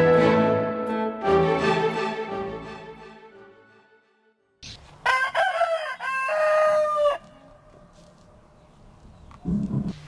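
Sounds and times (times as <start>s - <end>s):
rooster crowing: 5.0s - 7.6s.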